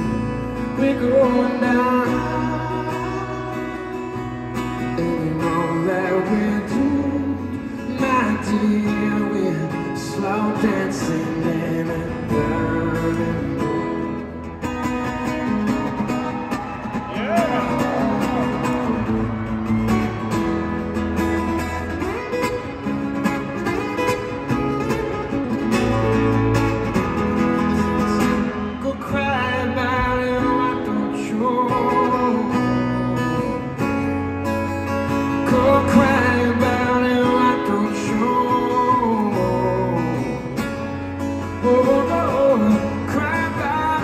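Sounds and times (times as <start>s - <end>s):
acoustic guitar ballad: 0.0s - 44.0s.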